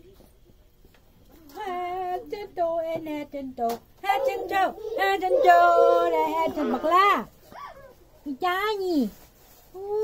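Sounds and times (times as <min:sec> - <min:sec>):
woman crooning: 0:04.1 - 0:07.2.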